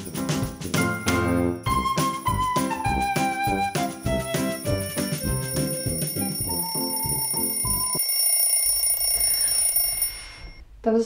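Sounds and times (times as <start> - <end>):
festive music with bell-like melody: 0.0 - 8.0
high-pitched smartphone alarm tone: 4.2 - 10.6.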